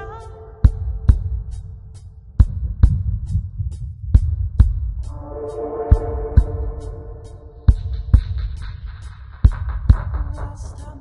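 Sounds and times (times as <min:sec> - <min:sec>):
deep heavy bassline: 0:05.0 - 0:08.4.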